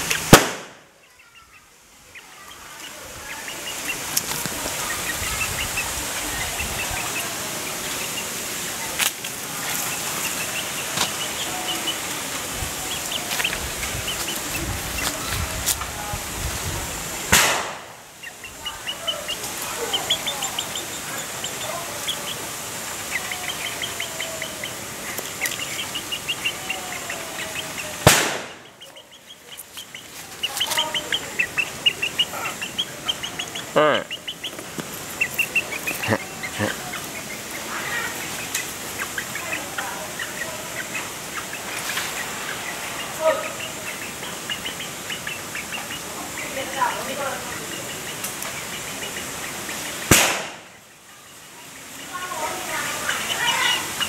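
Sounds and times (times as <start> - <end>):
background hiss: 0.0 - 54.0
chickens peeping: 0.0 - 54.0
loud sharp clicks: 0.1 - 0.8, 17.3 - 17.9, 28.0 - 28.6, 50.1 - 50.6.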